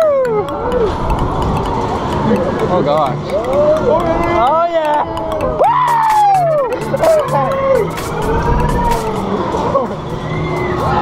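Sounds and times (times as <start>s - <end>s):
riders whooping and yelling: 5.5s - 7.8s.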